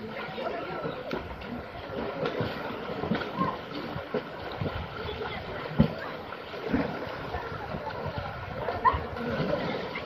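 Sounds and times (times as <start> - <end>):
swimmers splashing in a pool: 0.0 - 10.0
water washing: 0.0 - 10.0
wind on the microphone: 1.1 - 10.0.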